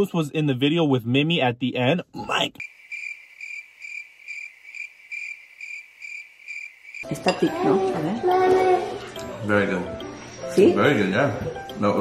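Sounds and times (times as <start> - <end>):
cricket chirping: 2.3 - 7.3.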